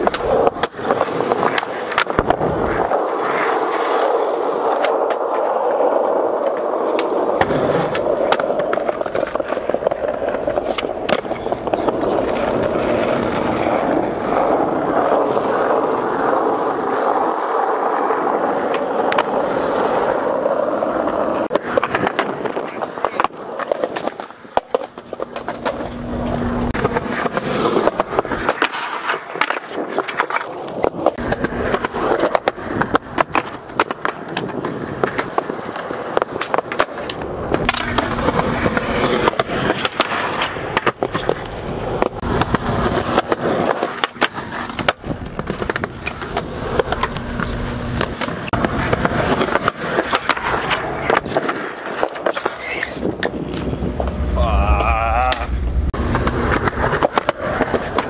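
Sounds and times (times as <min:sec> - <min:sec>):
skateboard clacks and knocks: 0:00.0 - 0:53.9, 0:55.3 - 0:58.0
skateboards rolling on concrete: 0:00.0 - 0:58.0.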